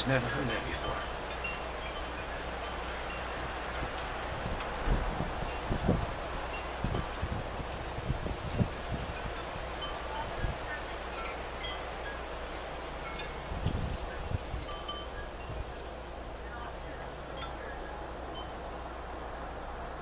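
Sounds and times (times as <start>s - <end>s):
wind chimes tinkling: 0.0s - 19.0s
steady breeze: 0.0s - 20.0s
wind bumping microphone: 0.6s - 15.9s.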